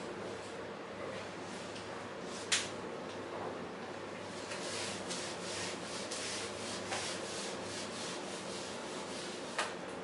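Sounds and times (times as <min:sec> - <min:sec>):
eraser rubbing on whiteboard: 0:04.4 - 0:09.7.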